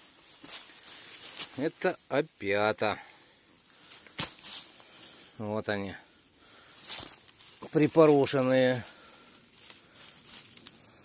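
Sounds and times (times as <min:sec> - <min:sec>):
sharp leaf crackle: 0:00.0 - 0:02.1, 0:03.7 - 0:05.4, 0:06.5 - 0:11.0
rustling on dry leaves: 0:00.0 - 0:11.0.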